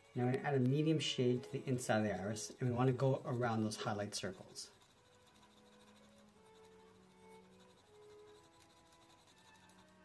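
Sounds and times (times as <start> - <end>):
pencil scratching on paper: 0.0 - 10.0
soft background music: 0.0 - 10.0.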